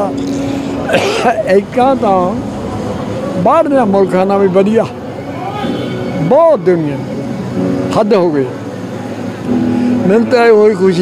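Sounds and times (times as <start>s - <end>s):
outdoor background noise: 0.0s - 11.0s
man speaking: 1.0s - 2.5s, 3.4s - 5.0s, 10.0s - 11.0s.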